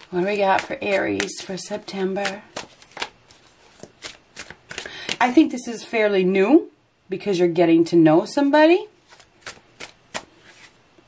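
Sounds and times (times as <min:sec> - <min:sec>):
cards being shuffled: 0:00.0 - 0:05.2, 0:09.0 - 0:10.8.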